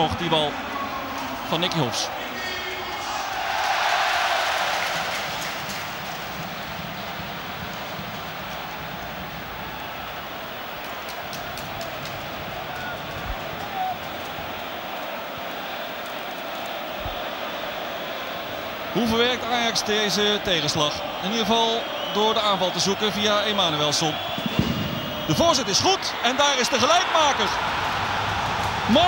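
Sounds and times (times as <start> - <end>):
stadium crowd din: 0.0 - 29.0.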